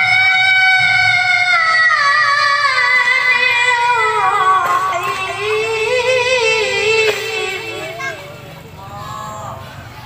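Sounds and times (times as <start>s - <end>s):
boy chanting into a microphone: 0.0s - 9.8s.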